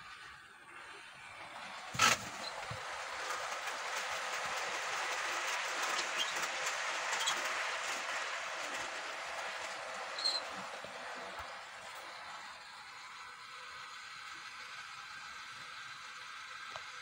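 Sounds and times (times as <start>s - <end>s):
model train running on track: 0.0s - 17.0s
clicks from rail joints: 1.6s - 12.1s.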